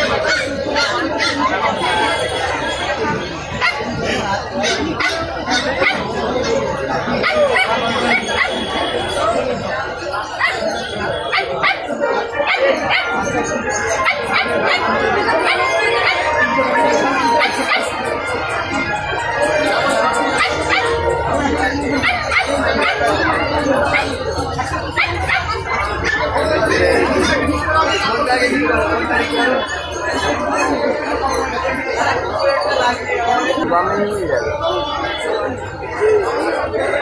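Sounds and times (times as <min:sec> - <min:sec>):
dogs barking: 0:00.0 - 0:28.2
overlapping chatter: 0:00.0 - 0:37.0
people talking: 0:00.0 - 0:37.0.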